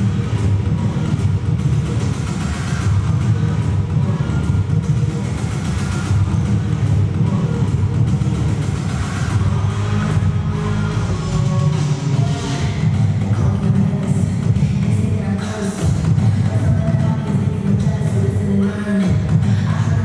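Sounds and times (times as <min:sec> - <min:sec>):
dance music with heavy bass: 0:00.0 - 0:20.0.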